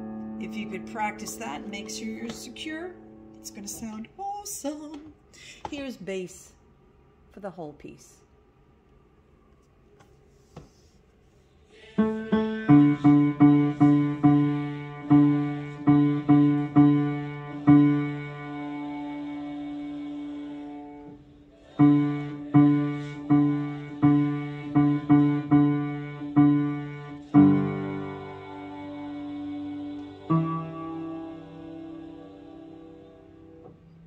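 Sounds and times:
upright piano low notes: 0:12.0 - 0:21.1, 0:21.8 - 0:34.0.

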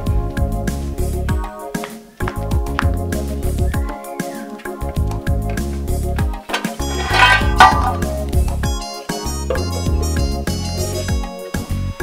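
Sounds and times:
instrumental background music: 0:00.0 - 0:12.0.

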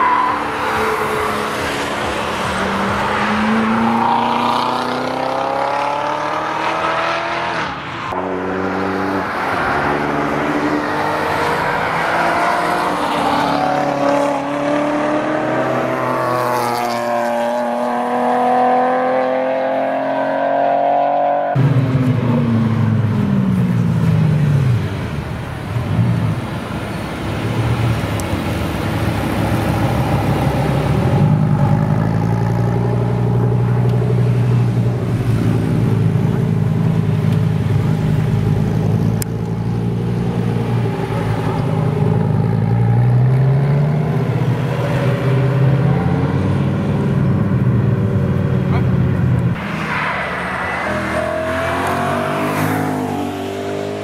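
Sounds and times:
car accelerating: 0:00.0 - 0:24.7, 0:27.8 - 0:54.0
car engine rumbling: 0:21.5 - 0:54.0.

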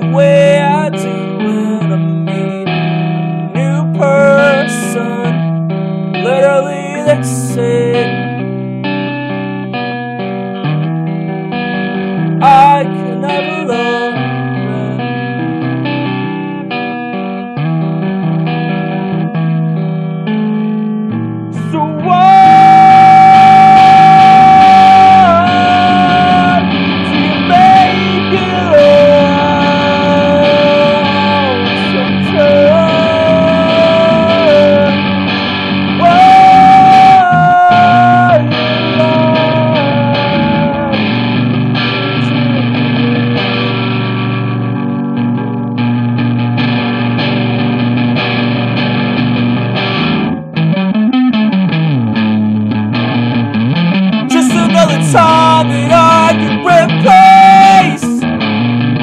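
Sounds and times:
low sliding guitar notes: 0:00.0 - 0:20.4, 0:21.1 - 0:59.0
lead guitar melody with bends: 0:00.0 - 0:59.0
rhythm guitar: 0:00.0 - 0:59.0.

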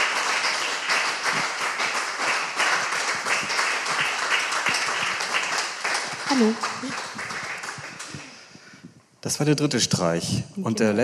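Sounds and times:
audience applause: 0:00.0 - 0:08.5.

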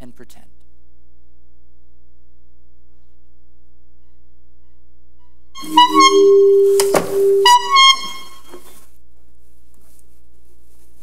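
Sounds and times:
reedy comic horn honks: 0:05.6 - 0:08.8.

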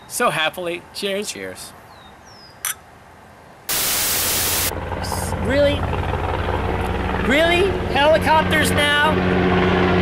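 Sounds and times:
white-noise static hiss: 0:03.6 - 0:04.7.

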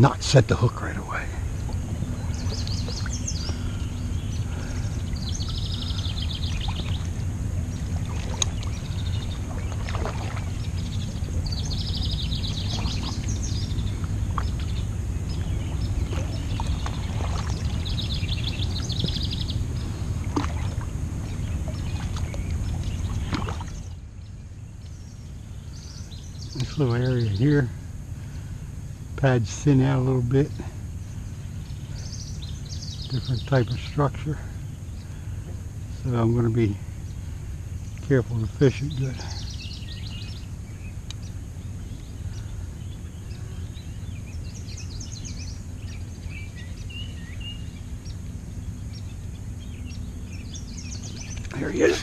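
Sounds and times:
bird singing trilled phrase: 0:00.0 - 0:20.1, 0:21.2 - 0:28.4, 0:29.2 - 0:35.2, 0:35.9 - 0:52.0
steady low rumble: 0:00.0 - 0:52.0
faint scattered clicks: 0:41.0 - 0:42.2, 0:51.0 - 0:51.6.

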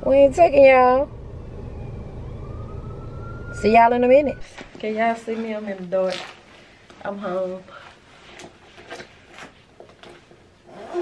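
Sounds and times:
car engine rumble: 0:00.0 - 0:04.4
faint siren wailing: 0:00.0 - 0:04.7.

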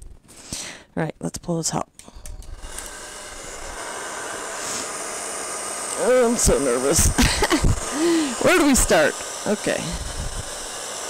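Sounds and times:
steady rushing hiss: 0:02.3 - 0:11.0.

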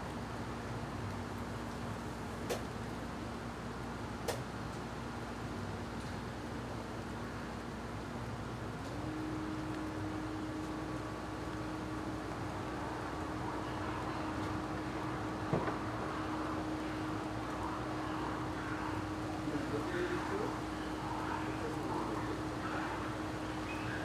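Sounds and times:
constant low hum: 0:00.0 - 0:24.0
distant voices talking: 0:12.6 - 0:24.0.

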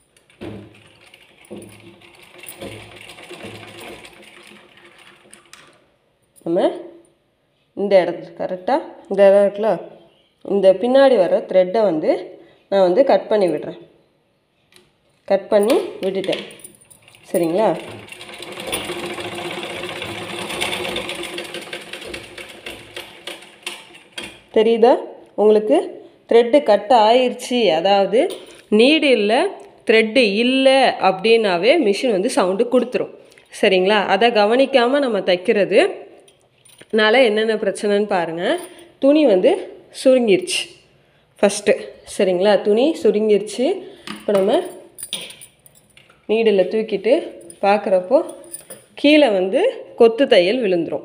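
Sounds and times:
sewing machine stitching: 0:00.4 - 0:05.8, 0:17.0 - 0:24.5.

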